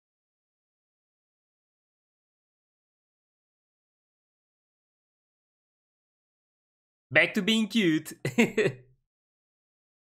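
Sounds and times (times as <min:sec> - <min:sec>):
man speaking: 0:07.1 - 0:08.8
man laughing: 0:08.0 - 0:08.8.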